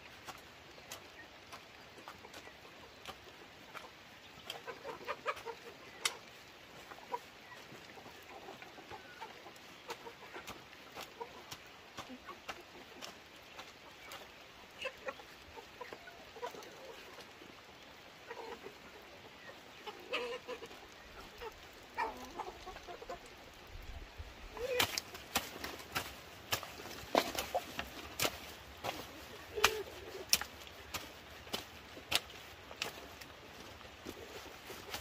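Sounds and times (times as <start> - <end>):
hoe scraping through wet soil: 0.0 - 15.2, 24.4 - 35.0
chickens clucking: 0.0 - 35.0.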